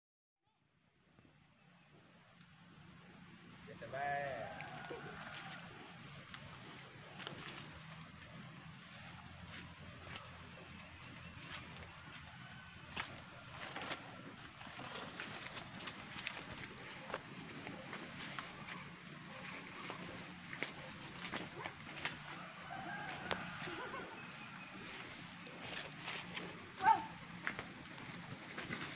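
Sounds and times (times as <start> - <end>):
footsteps on dry leaves: 4.6 - 28.9.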